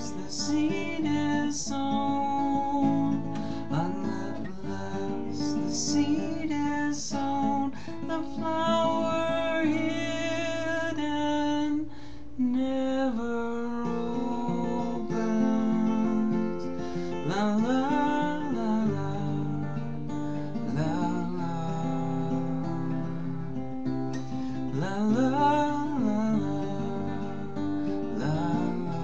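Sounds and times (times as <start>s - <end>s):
fingerpicked acoustic guitar: 0.0s - 29.0s
person singing: 0.0s - 29.0s.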